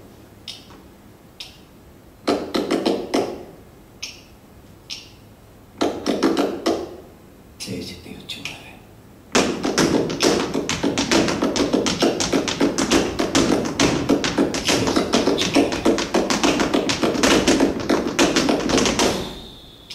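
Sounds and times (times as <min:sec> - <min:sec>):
sharp flamenco percussion strikes: 0:02.2 - 0:03.5, 0:05.8 - 0:07.0, 0:09.3 - 0:19.9.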